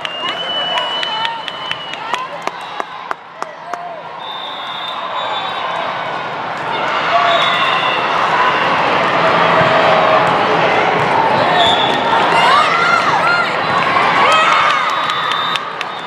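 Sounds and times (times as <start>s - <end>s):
crowd shouting in echoing hall: 2.0s - 16.0s.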